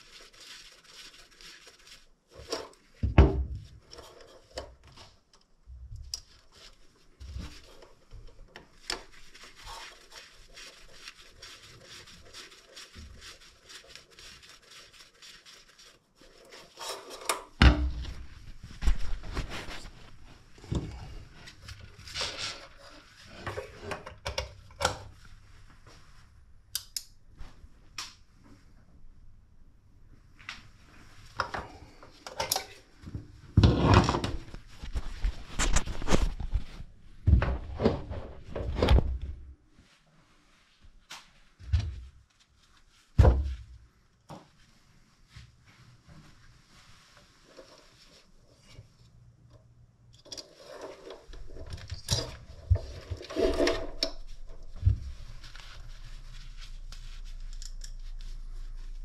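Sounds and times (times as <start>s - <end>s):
handling noise rubbing and scraping: 0.0s - 5.3s, 6.2s - 26.2s, 30.9s - 39.1s, 45.3s - 49.3s, 50.1s - 59.0s.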